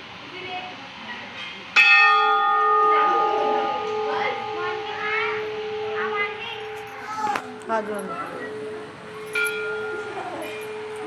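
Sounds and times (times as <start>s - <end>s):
faint background voices: 0.0s - 11.0s
temple bell ringing: 1.8s - 11.0s.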